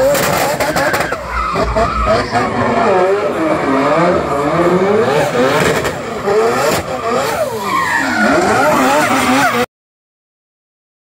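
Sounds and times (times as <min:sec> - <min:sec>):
rotary engine revving: 0:00.0 - 0:09.7
tyre screech: 0:00.0 - 0:09.7.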